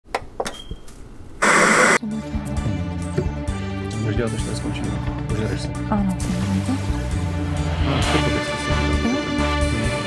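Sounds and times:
burst of static hiss: 1.4s - 2.0s.

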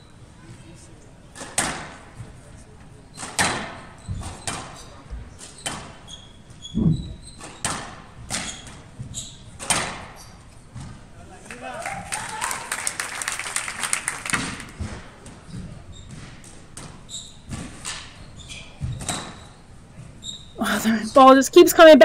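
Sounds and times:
court shoes squeaking: 1.3s - 11.2s, 14.4s - 22.0s.

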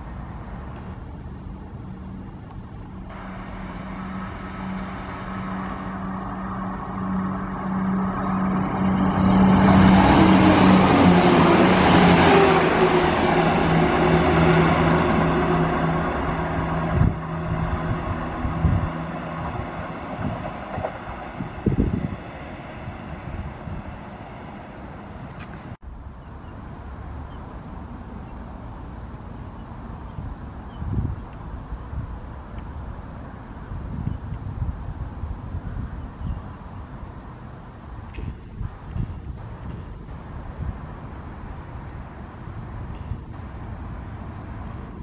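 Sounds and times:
diesel train passing: 0.0s - 45.0s.

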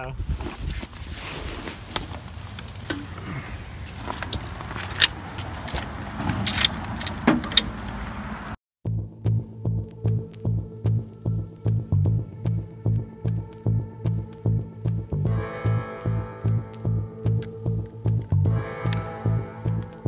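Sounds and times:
music with throbbing beat: 8.9s - 20.0s.

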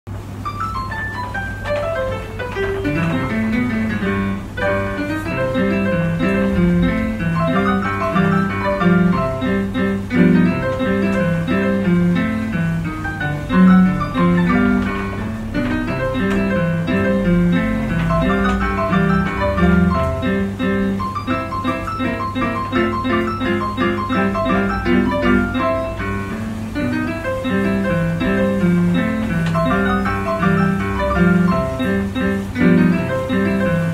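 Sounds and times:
piano music: 0.1s - 33.9s.

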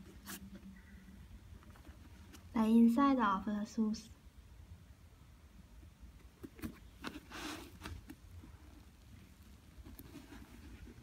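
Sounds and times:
sneaker rustling when handled: 0.0s - 0.8s, 6.2s - 11.0s.

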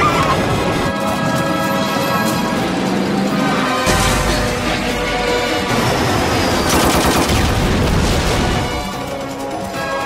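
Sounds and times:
dramatic trailer music: 0.6s - 10.0s
rapid clatter of sharp bangs: 3.9s - 10.0s.

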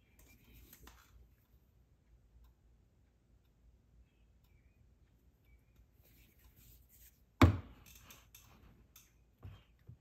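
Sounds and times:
bottle knocking on bench: 7.4s - 7.7s.

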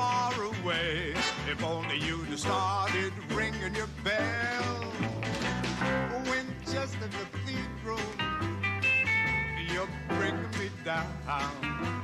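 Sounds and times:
man singing: 0.0s - 8.5s, 9.4s - 12.0s
dance band playing: 0.0s - 12.0s.

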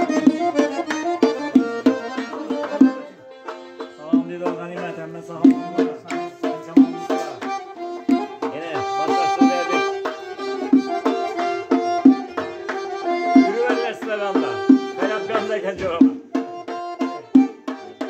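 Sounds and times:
hand drum beating: 0.0s - 18.0s
ornamented folk melody: 0.0s - 18.0s.

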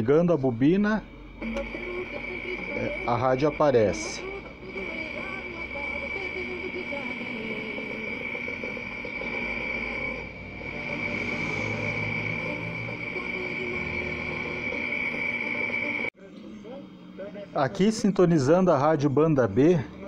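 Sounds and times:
high-pitched radio whistle: 0.0s - 16.1s.

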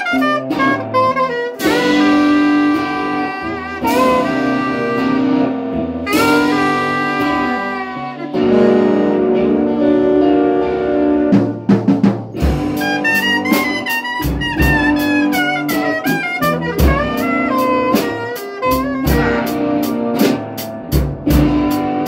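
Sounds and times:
saxophone playing jazzy melody: 0.0s - 11.8s, 12.4s - 22.0s
electric guitar: 0.0s - 22.0s.

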